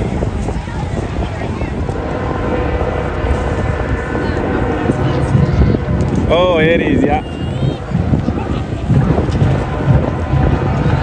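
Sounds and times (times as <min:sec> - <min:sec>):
faint voices: 0:00.0 - 0:11.0
truck engine and tyre rumble: 0:00.0 - 0:11.0
wind on microphone: 0:00.0 - 0:11.0.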